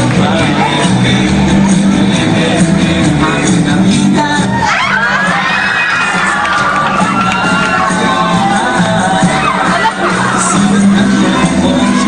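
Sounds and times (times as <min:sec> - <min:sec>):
loud dance music: 0:00.0 - 0:12.0
students screaming and cheering: 0:04.2 - 0:12.0.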